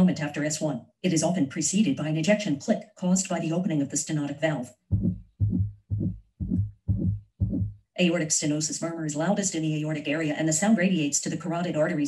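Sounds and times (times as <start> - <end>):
heart murmur: 4.9 - 7.8
heartbeat lub-dub: 4.9 - 7.8.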